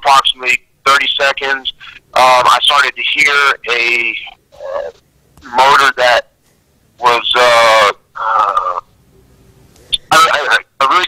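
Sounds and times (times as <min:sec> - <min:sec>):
man speaking hesitantly: 0:00.0 - 0:06.3, 0:07.0 - 0:08.9.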